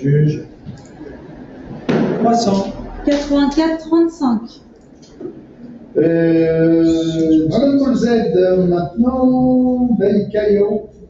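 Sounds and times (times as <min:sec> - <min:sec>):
people talking: 0:00.0 - 0:05.4, 0:06.0 - 0:11.0.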